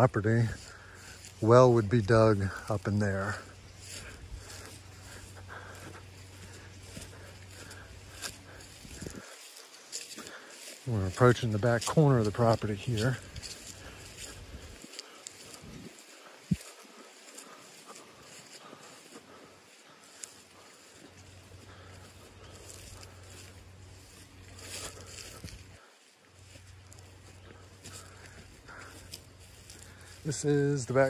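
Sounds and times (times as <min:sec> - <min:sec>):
footsteps swishing through grass: 0:00.0 - 0:31.0
outdoor background noise: 0:00.0 - 0:31.0.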